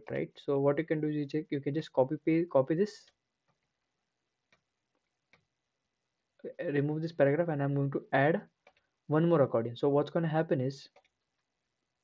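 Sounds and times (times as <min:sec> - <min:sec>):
faint computer clicks: 0:08.6 - 0:08.9.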